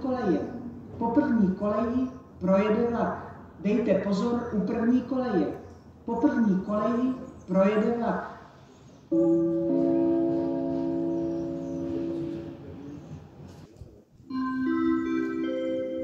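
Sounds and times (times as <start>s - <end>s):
bell-like public-address chime: 9.1s - 12.8s, 14.3s - 16.0s.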